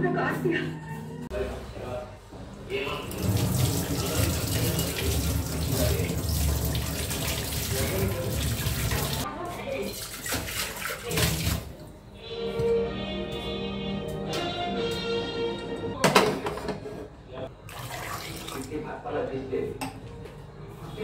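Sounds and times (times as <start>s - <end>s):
water running from a tap: 3.0s - 11.8s, 17.7s - 18.7s
water splashing over hands: 9.9s - 11.7s.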